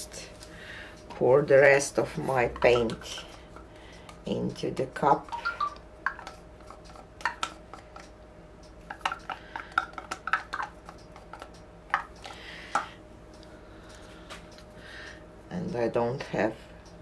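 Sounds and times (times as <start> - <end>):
plastic cups tapping and clicking: 2.3 - 8.2, 8.8 - 13.0.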